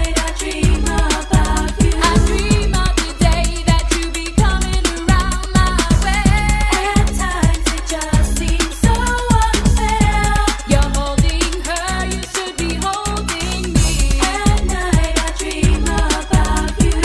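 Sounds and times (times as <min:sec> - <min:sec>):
electronic drum beat: 0:00.0 - 0:12.6
synth bass: 0:00.6 - 0:03.8
sung melody: 0:01.8 - 0:03.6.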